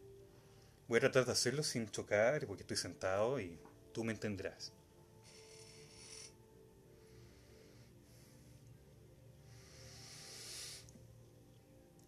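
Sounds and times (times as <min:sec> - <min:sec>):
breath drawn in through nose: 0:09.4 - 0:11.1.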